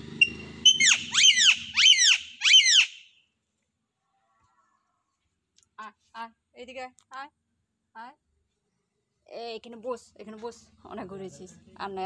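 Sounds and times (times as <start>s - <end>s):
parrot screeching: 0.2s - 3.1s.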